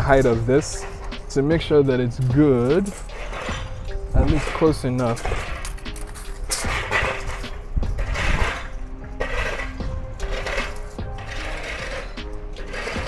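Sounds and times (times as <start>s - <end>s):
soft background music: 0.0s - 13.0s.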